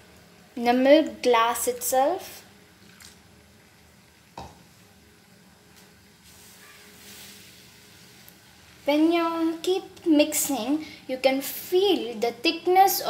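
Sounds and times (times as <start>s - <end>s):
soft hiss: 0.0s - 13.0s.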